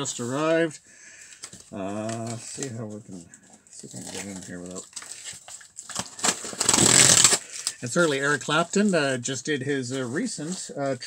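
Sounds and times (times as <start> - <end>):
packaging tearing and crinkling: 3.8 - 8.8.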